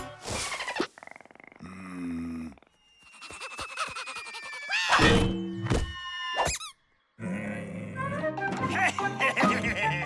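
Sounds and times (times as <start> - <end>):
squeal bending upward: 2.6 - 6.8.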